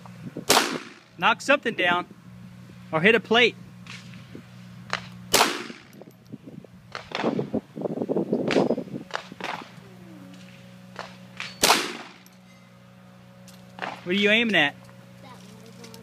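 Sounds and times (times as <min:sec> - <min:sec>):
pistol shots: 0:00.5 - 0:01.0, 0:04.9 - 0:05.9, 0:11.0 - 0:12.2.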